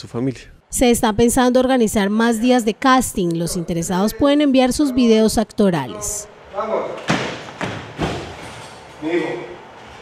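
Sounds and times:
feet stamping on hard floor: 7.0 - 8.6.

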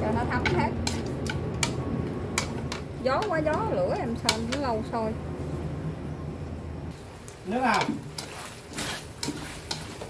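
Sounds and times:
chopsticks clicking on metal wok: 0.0 - 4.8, 7.2 - 8.3
steady low rumble: 0.0 - 7.1.

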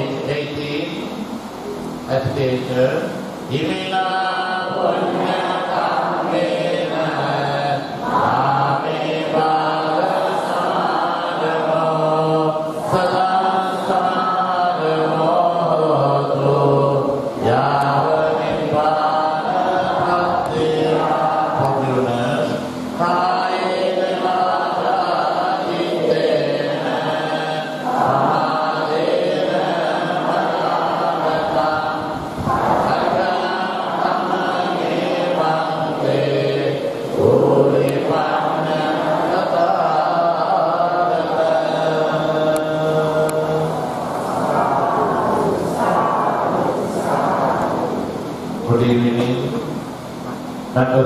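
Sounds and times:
group chanting: 3.4 - 49.2.

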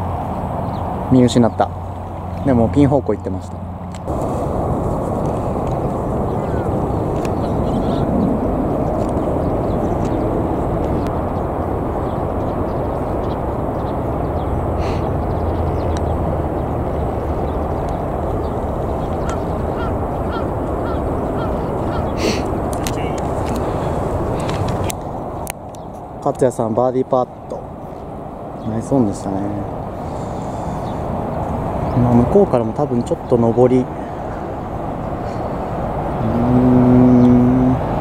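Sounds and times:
wind rumble on microphone: 0.0 - 38.0.

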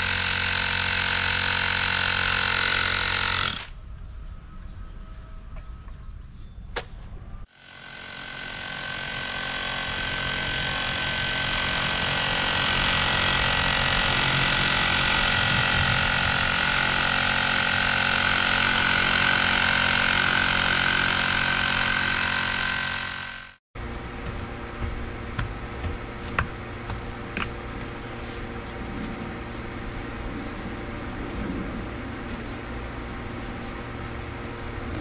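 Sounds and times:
rotary hammer driving ground rod: 0.0 - 3.8, 7.5 - 29.2.

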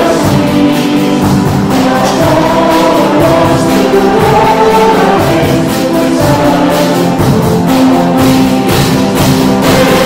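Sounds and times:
congregation singing a hymn: 0.0 - 10.0
worship band playing: 0.0 - 10.0.

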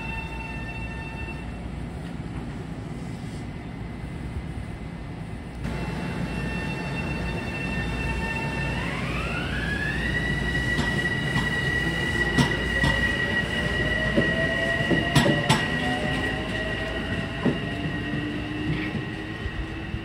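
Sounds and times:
electric train whine: 0.0 - 20.0.

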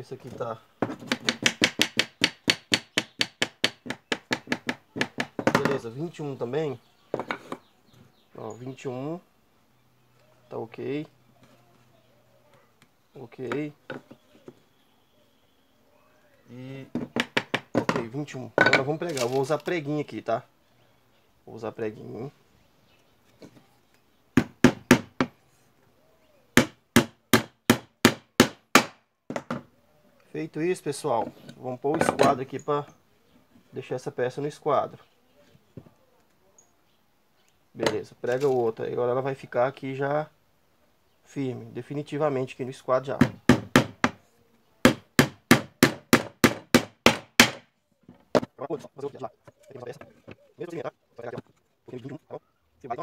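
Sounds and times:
hammer driving nails into wood: 0.8 - 5.8, 26.6 - 29.6, 43.2 - 44.2, 44.9 - 47.7.

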